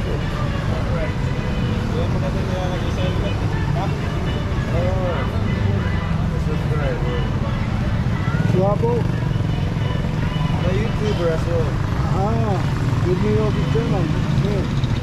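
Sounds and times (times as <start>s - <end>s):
engines idling and passing: 0.0s - 15.0s
indistinct voices: 0.0s - 15.0s.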